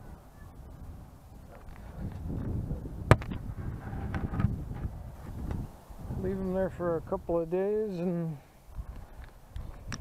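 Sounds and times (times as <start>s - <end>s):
low wind rumble on microphone: 0.0s - 7.5s, 8.7s - 10.0s.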